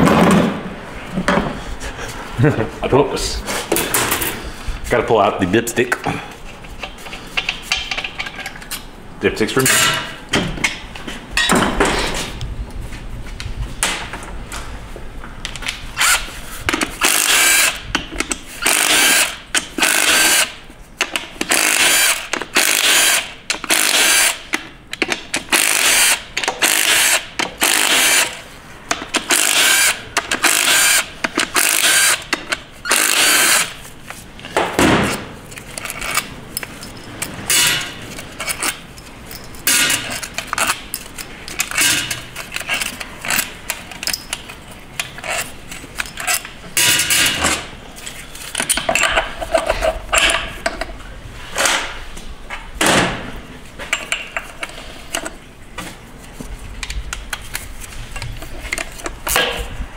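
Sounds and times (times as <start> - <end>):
cordless power tool bursts: 17.0 - 17.8, 18.6 - 20.5, 25.5 - 28.4, 29.3 - 32.3, 32.9 - 33.8.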